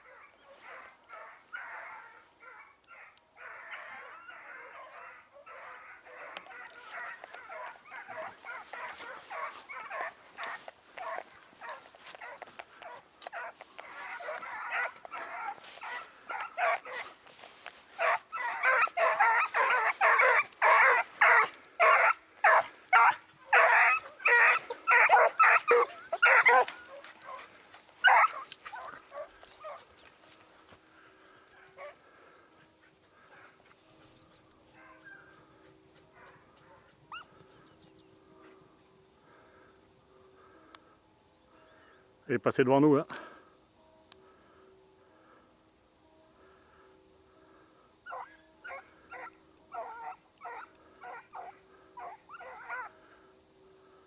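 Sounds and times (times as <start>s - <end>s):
hounds baying in chorus: 0.0s - 42.1s, 43.0s - 54.0s.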